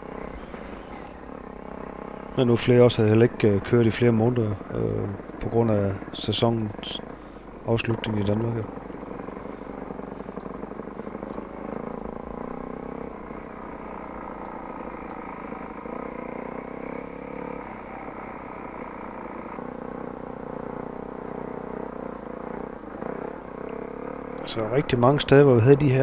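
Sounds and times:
motorcycle engine revving: 0.0 - 26.0.

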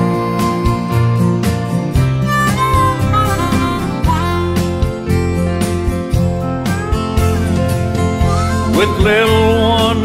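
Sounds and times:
harmonica melody: 0.0 - 10.0
strummed acoustic guitar: 0.0 - 10.0.

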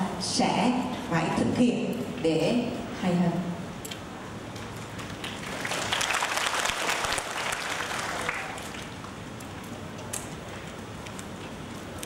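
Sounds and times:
audience applauding: 5.0 - 9.2.

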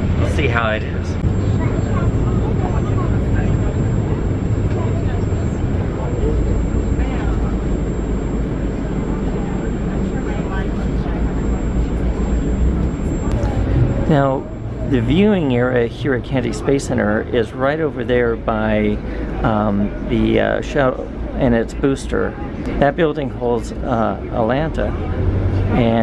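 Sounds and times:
bus engine and road rumble: 0.0 - 26.0
faint passenger voices: 0.0 - 26.0.

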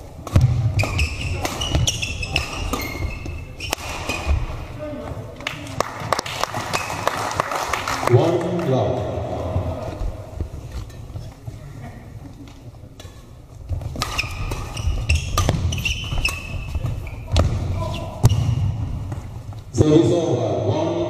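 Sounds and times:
rackets hitting shuttlecock: 0.2 - 4.7, 13.0 - 19.4.

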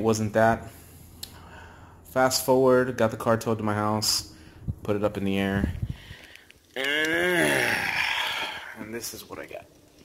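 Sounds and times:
man groaning breathily: 6.8 - 8.8.

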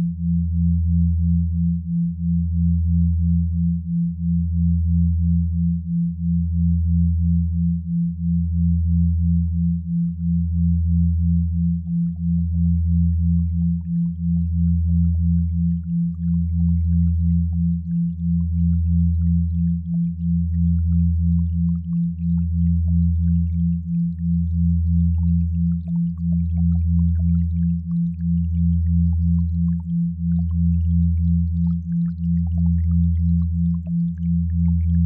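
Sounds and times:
higher pulsing pure tone: 0.0 - 35.0
low pure hum breaking: 0.0 - 35.0.

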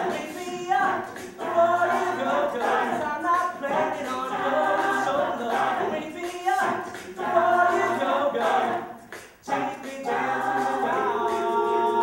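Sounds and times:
a cappella group singing: 0.0 - 12.0.

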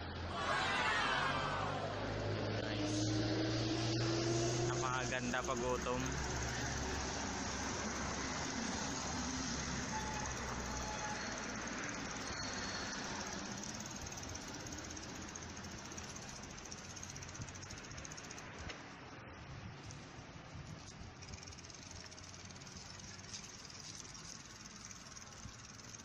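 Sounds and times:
road noise hiss: 0.0 - 26.0
vehicle engine hum: 0.0 - 26.0.

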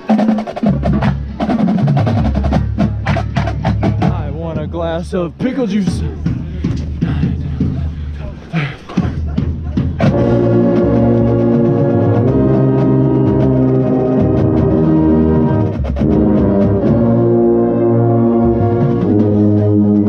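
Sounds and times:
people moving about: 0.0 - 10.7
voices: 2.7 - 10.2
brass line playing loud chords: 10.0 - 20.0
contrabass bugle: 10.0 - 20.0.

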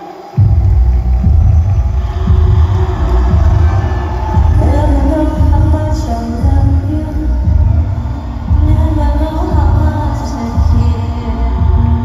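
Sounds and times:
live concert music with heavy bass: 0.0 - 12.0.

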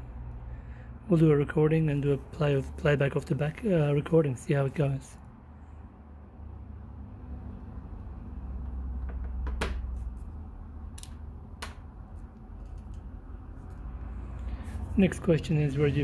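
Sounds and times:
sharp plastic clicks: 10.9 - 13.1.

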